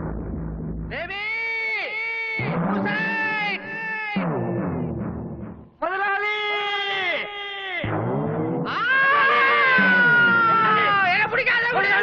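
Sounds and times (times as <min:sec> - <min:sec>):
man shouting long calls: 0:08.7 - 0:12.0.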